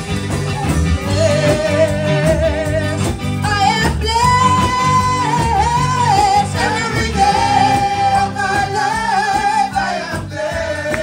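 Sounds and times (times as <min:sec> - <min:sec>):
instrumental backing: 0:00.0 - 0:11.0
woman singing gospel song: 0:00.5 - 0:11.0.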